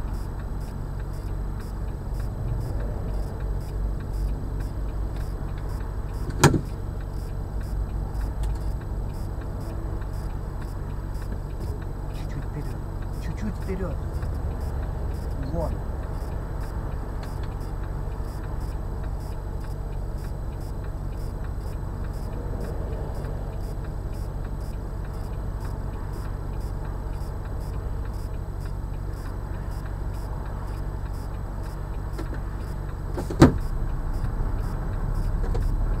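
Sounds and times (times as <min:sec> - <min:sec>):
car engine idling: 0:00.0 - 0:36.0
motorway traffic passing: 0:00.0 - 0:36.0.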